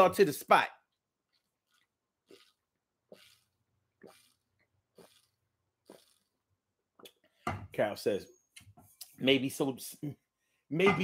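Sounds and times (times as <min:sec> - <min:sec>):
man gulping water: 0:01.7 - 0:07.3.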